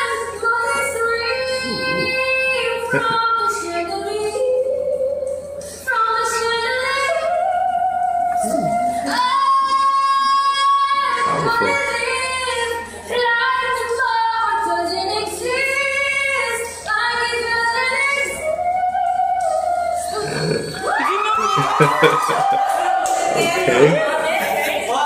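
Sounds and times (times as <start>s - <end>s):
breaths between phrases: 20.2s - 20.8s, 23.4s - 24.0s.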